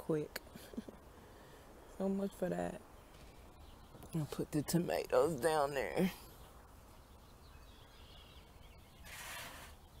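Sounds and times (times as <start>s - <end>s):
distant birds chirping: 0.0s - 10.0s
brief rustling hiss: 9.0s - 9.8s.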